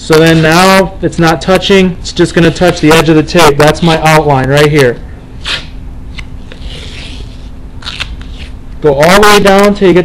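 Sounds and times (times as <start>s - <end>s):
tape rasping: 5.4s - 8.6s.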